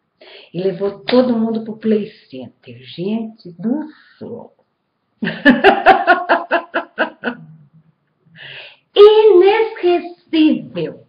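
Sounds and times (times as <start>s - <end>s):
woman laughing: 5.2s - 7.6s
breathy intake of breath: 8.3s - 8.9s.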